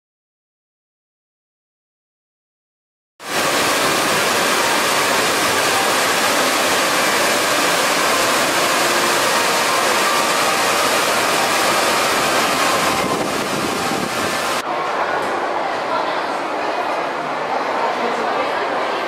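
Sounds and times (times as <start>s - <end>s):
fountain water splashing into pool: 3.2s - 14.6s.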